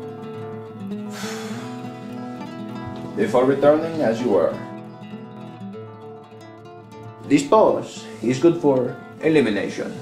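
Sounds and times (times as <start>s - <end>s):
plucked string instrument: 0.0s - 10.0s.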